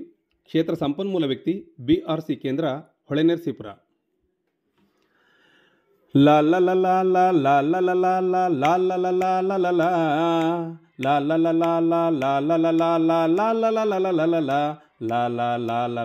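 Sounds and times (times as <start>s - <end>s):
person singing la la la: 6.2s - 16.0s.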